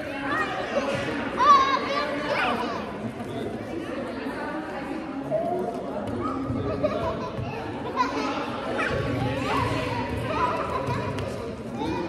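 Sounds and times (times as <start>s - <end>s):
indistinct chatter of voices: 0.0s - 12.0s.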